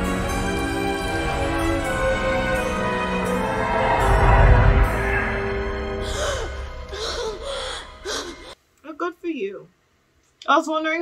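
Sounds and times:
woman gasping for breath: 6.0 - 8.6
woman's voice: 8.8 - 9.7, 10.4 - 11.0.

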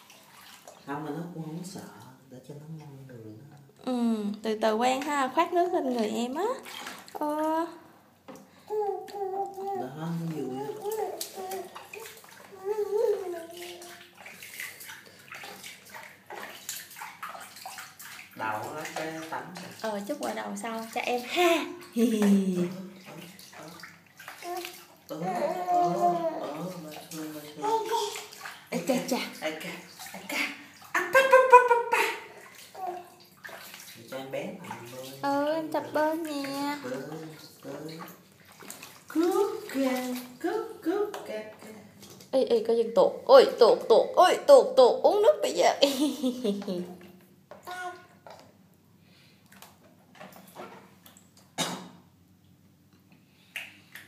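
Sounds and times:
water splashing in a baby bath: 0.0 - 48.6, 49.3 - 52.1, 53.4 - 54.0
baby vocalizing: 8.7 - 14.0, 24.4 - 26.7
high-pitched voice: 47.7 - 48.1.

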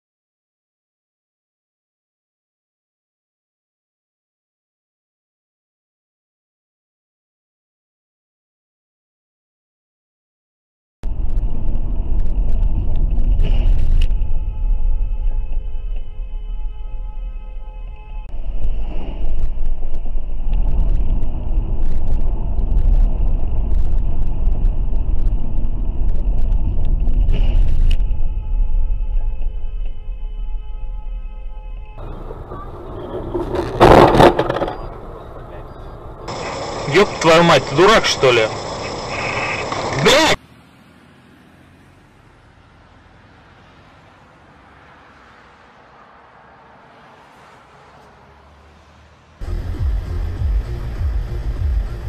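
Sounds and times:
car driving low rumble: 11.0 - 52.0
road noise: 11.0 - 52.0
car crash and scrape: 13.1 - 14.6, 27.0 - 28.2, 32.0 - 36.4
steady high tones: 34.7 - 40.4.

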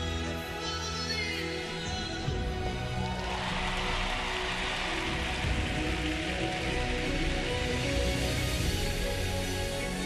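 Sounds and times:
slow music: 0.0 - 10.0
crowd applauding: 2.8 - 9.1.

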